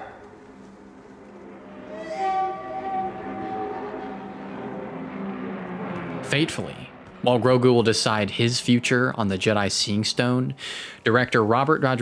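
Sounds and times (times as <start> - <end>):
low engine drone: 0.0 - 10.4.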